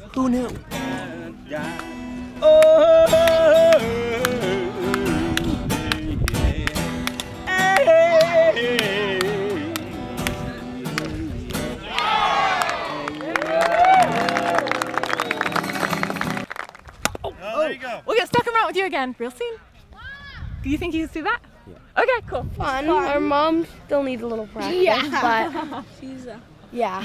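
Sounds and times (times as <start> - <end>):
strummed acoustic guitar: 0.3 - 11.8
man singing: 0.3 - 12.0
voices shouting and cheering: 11.8 - 16.3, 19.5 - 20.6.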